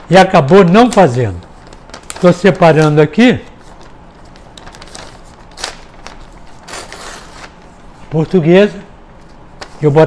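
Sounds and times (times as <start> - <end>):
sharp paper crinkle: 0.2 - 8.2, 9.2 - 10.0
paper rustling: 0.4 - 8.4, 9.1 - 10.0.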